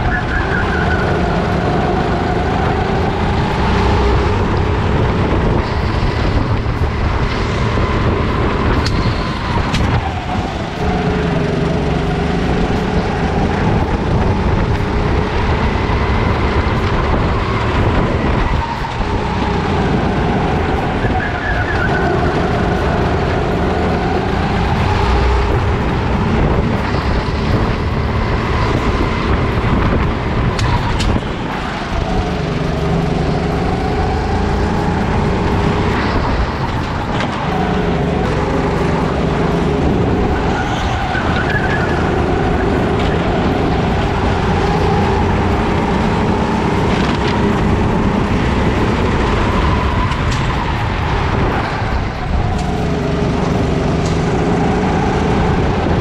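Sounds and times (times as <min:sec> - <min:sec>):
kart engine running hard: 0:00.0 - 0:56.0.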